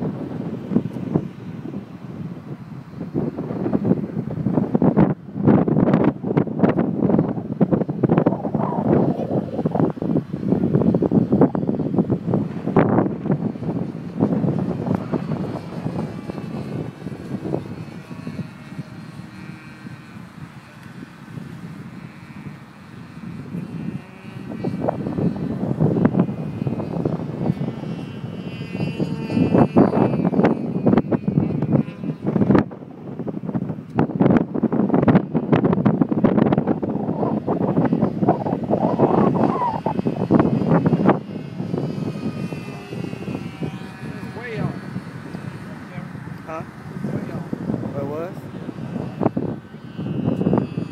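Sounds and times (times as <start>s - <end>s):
model airplane engine droning: 0.0s - 50.9s
wind buffeting microphone: 0.0s - 50.9s.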